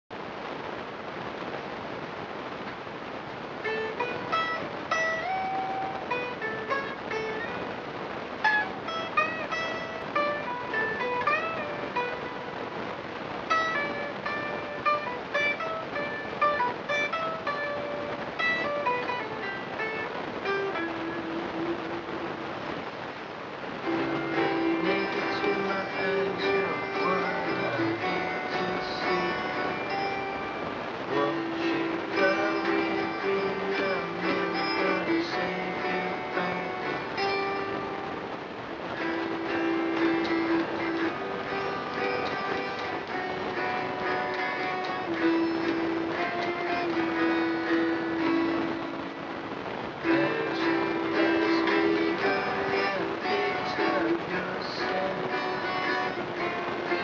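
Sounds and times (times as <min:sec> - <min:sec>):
electric guitar: 0:00.1 - 0:57.0.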